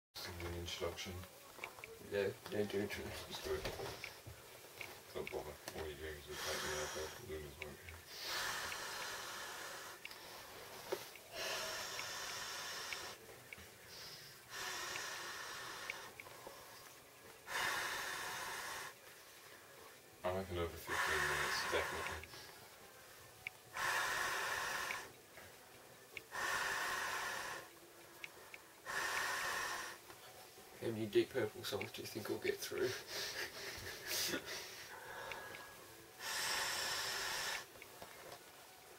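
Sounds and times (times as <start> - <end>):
quick inhalations: 6.3 - 7.3, 8.0 - 13.2, 13.8 - 19.0, 20.9 - 22.6, 23.7 - 25.2, 26.2 - 30.1, 32.7 - 37.8.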